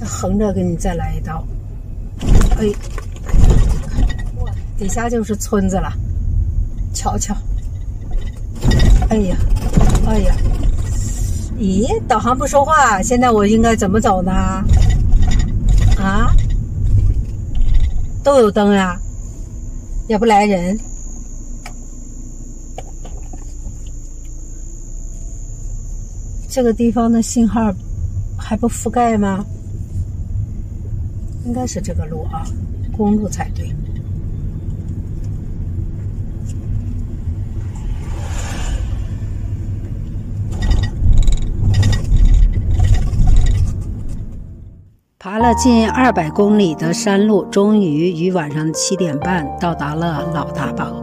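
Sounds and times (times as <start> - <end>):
crickets chirring: 0.0 - 51.0
slowly moving car rumble: 0.0 - 51.0
knocks and rattles: 2.2 - 4.8, 7.5 - 11.0, 14.6 - 18.1.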